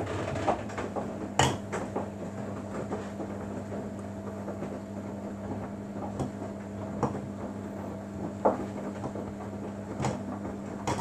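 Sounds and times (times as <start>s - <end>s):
motor hum: 0.0s - 11.0s
washing machine drum turning laundry: 0.0s - 11.0s.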